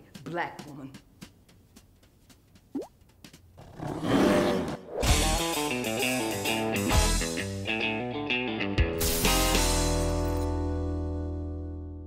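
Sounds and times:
music: 5.0s - 12.0s.

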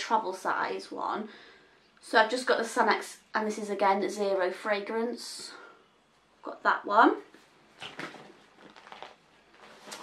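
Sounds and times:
rustling in a bag: 7.7s - 10.0s.

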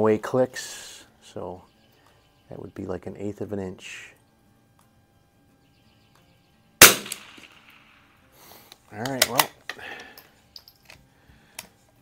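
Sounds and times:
rifle shot: 6.8s - 8.1s.

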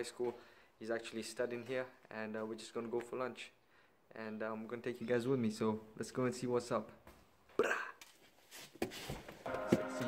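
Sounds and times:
man speaking: 0.0s - 7.0s.

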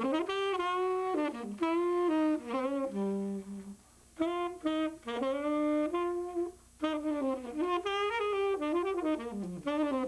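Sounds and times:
tenor saxophone: 0.0s - 10.0s.

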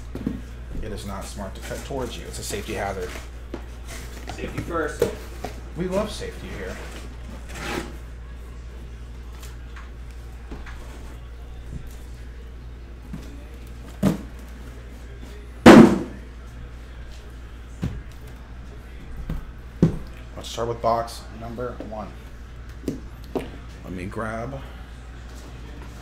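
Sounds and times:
boxes knocking on a table: 15.7s - 16.2s
heavy thud: 15.7s - 16.2s.

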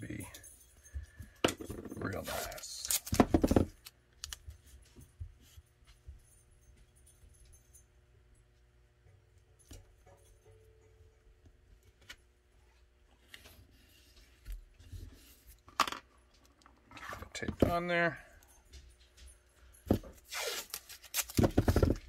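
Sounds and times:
tape rubbing: 20.2s - 22.0s.

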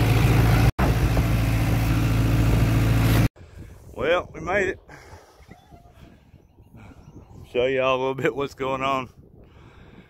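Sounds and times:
wind rumble on microphone: 3.4s - 10.0s.

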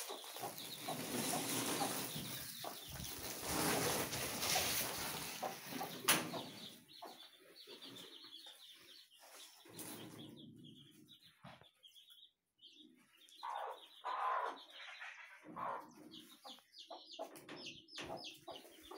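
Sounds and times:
hen clucking: 0.0s - 11.0s, 13.3s - 18.9s
chicks peeping: 0.0s - 18.9s.

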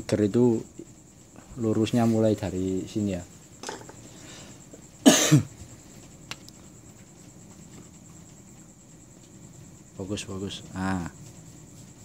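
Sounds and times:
man coughing: 5.0s - 5.5s.

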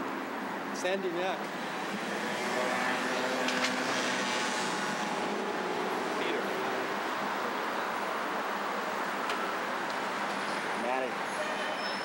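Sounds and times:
cars and engines moving: 0.0s - 12.0s.

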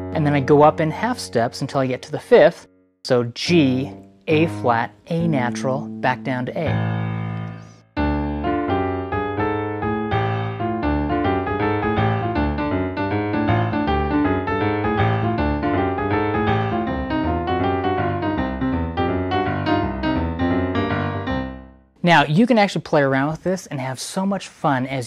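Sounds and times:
boogie-woogie piano: 0.0s - 2.3s, 3.4s - 21.8s.

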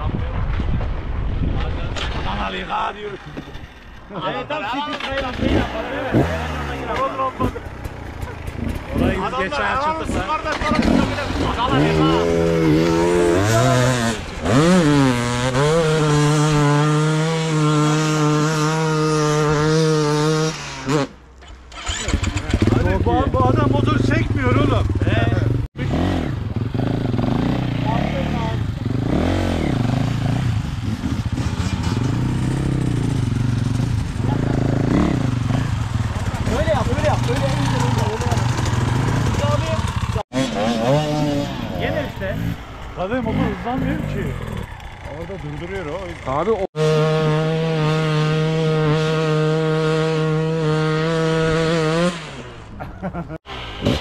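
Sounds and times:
people talking: 1.5s - 3.4s, 4.1s - 7.6s, 8.2s - 14.2s, 22.4s - 26.3s, 27.6s - 28.9s, 36.4s - 38.6s, 39.2s - 46.7s
dirt bike engine idling: 5.0s - 12.2s, 22.1s - 29.1s, 29.8s - 46.7s.

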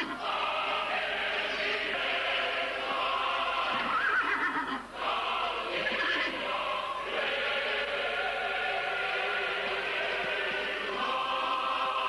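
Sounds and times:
horses whinnying: 3.7s - 4.9s, 5.8s - 6.4s.

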